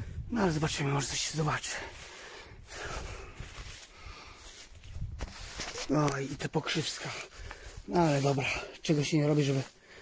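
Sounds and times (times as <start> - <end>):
footsteps through vegetation: 0.4 - 10.0
vegetation rustling: 0.4 - 10.0.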